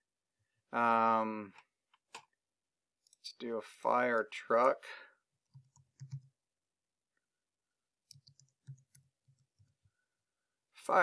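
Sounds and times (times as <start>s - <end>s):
computer keyboard keystrokes: 5.5s - 6.3s, 8.1s - 9.4s.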